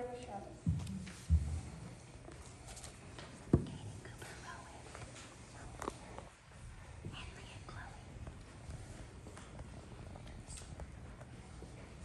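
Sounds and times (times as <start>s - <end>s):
faint whispering voices: 3.6s - 9.1s.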